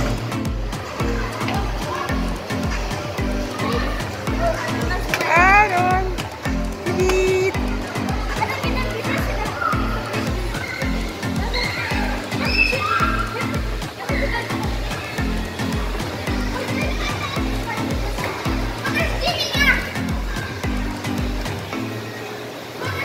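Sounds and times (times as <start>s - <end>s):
music with bass beat: 0.0s - 21.7s
children playing and calling out: 0.0s - 23.0s
child's high squeal: 11.5s - 14.3s.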